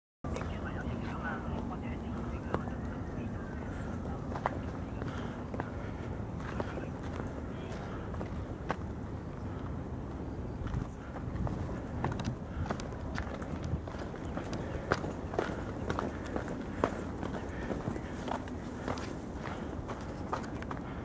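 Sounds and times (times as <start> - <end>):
steady low rumble: 0.2 - 21.0
faint voices: 0.3 - 21.0.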